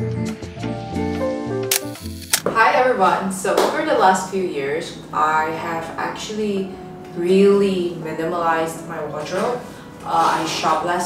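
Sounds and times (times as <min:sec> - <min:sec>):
light background music: 0:00.0 - 0:11.0
camera shutter clicks: 0:01.7 - 0:02.5
woman speaking: 0:02.5 - 0:11.0.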